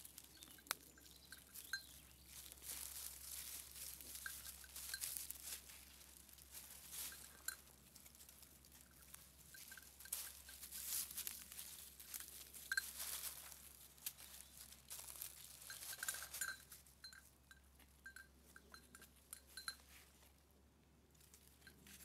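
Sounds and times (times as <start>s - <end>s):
dry leaves rustling underfoot: 0.0s - 17.2s.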